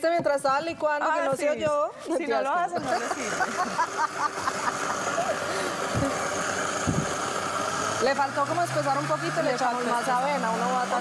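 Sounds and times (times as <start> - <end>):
blender running: 2.8 - 11.0.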